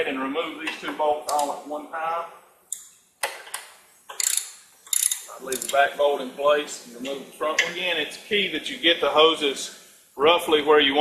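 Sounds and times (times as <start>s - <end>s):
ratchet wrench clicking: 4.1s - 5.8s.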